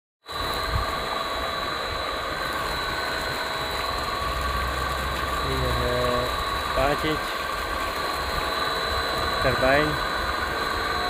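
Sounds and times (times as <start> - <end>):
high whine: 0.2 - 11.0
water gushing into channel: 0.3 - 11.0.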